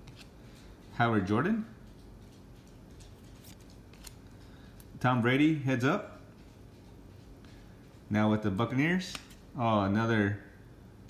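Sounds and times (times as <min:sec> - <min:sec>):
trading cards rustling: 0:00.0 - 0:01.0, 0:01.9 - 0:05.0.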